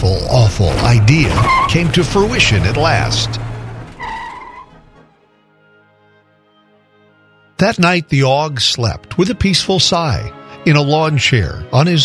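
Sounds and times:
car speeding away: 0:00.6 - 0:05.1
quiet background music: 0:04.2 - 0:12.0.

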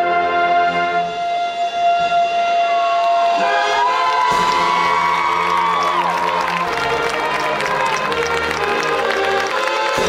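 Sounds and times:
marching band music: 0:00.0 - 0:10.0
crowd cheering and whooping: 0:02.6 - 0:10.0
deep band sound: 0:03.4 - 0:10.0.

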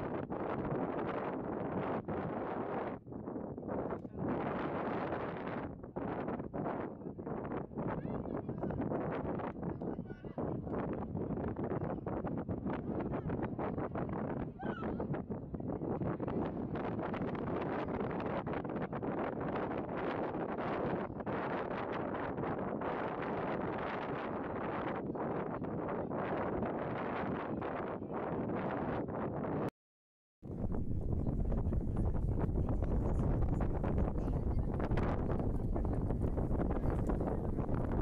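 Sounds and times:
wind buffeting microphone: 0:00.0 - 0:29.7, 0:30.4 - 0:38.0
crowd chatter: 0:30.9 - 0:38.0.

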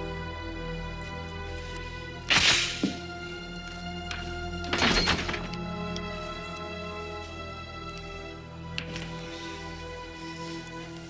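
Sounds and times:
film score sustained chords: 0:00.0 - 0:11.0.

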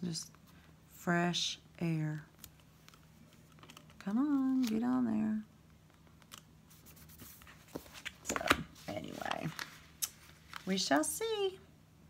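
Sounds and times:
paper rustling: 0:05.9 - 0:11.0.

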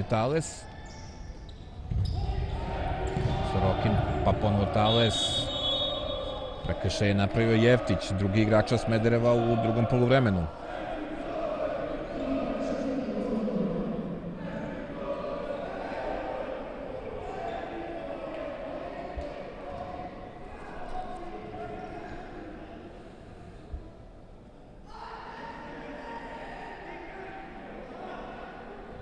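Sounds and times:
voices in a sports hall: 0:00.0 - 0:29.0.

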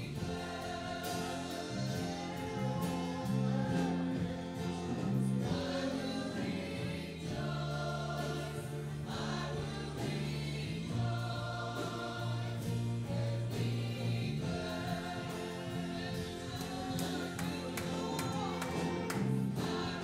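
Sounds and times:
worship band playing slow song: 0:00.0 - 0:20.0.

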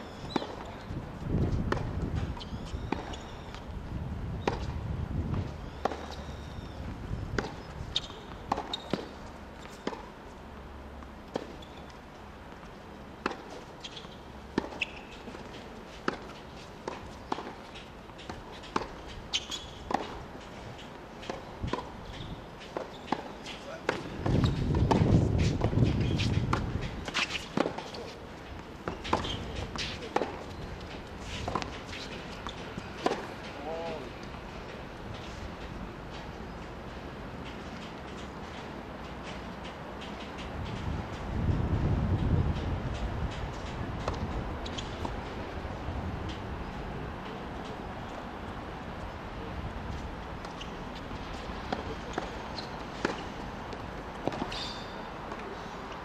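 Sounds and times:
tennis ball bouncing and struck: 0:00.2 - 0:00.9, 0:01.7 - 0:03.6, 0:04.4 - 0:06.3, 0:07.3 - 0:10.2, 0:13.2 - 0:28.2, 0:28.8 - 0:34.4, 0:42.9 - 0:45.3, 0:50.4 - 0:55.6.

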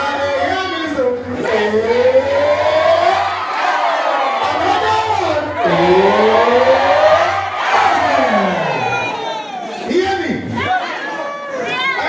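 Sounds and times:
crowd voices: 0:01.2 - 0:12.0
man singing a long note: 0:05.6 - 0:09.0.

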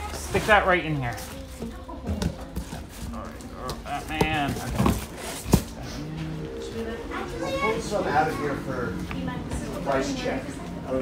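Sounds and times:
comic books thumping into box: 0:03.6 - 0:05.8.

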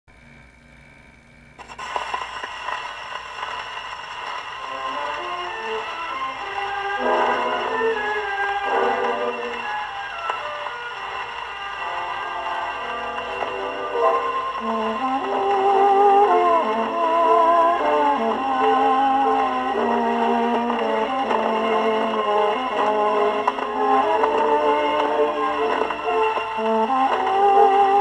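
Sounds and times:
record surface hiss: 0:00.1 - 0:28.0
waltz on gramophone: 0:01.6 - 0:28.0.

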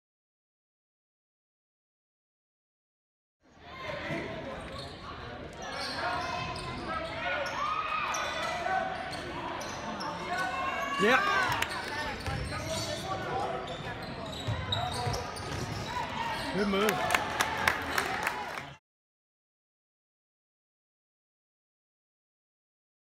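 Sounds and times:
crowd chatter: 0:03.5 - 0:18.8
sneaker squeaks: 0:04.1 - 0:16.8.

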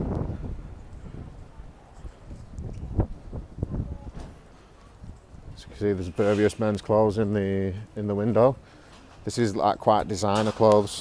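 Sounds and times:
wind rumble on microphone: 0:00.0 - 0:05.9.

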